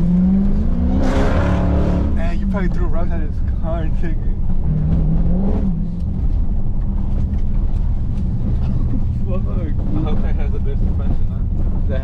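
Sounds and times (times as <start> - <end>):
car engine drone: 0.0 - 12.0
road noise: 0.0 - 12.0.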